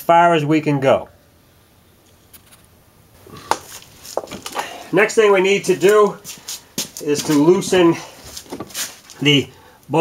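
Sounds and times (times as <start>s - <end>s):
man speaking: 4.6s - 6.3s, 6.9s - 8.2s, 9.2s - 10.0s.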